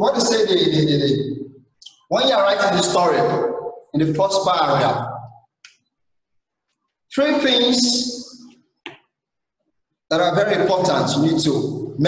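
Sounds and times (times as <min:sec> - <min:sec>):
man speaking: 0:00.0 - 0:05.4, 0:07.1 - 0:08.5, 0:10.1 - 0:12.0.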